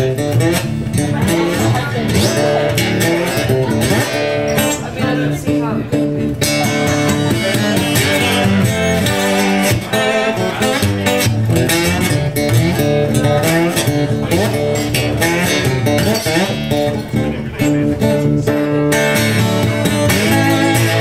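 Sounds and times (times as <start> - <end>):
blues slide guitar: 0.0 - 21.0
strummed guitar rhythm: 0.0 - 21.0.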